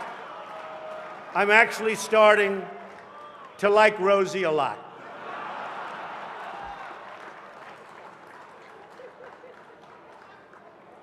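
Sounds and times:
audience applause: 0.0 - 4.0, 5.1 - 11.0.

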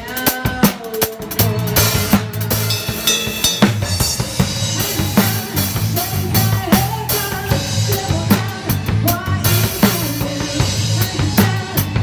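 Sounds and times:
bass and band instruments: 0.0 - 12.0
drum kit groove: 0.0 - 12.0.

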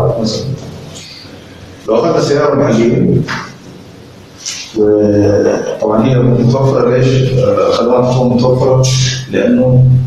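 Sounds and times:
man talking: 0.0 - 0.6, 1.8 - 3.5, 4.5 - 10.0.

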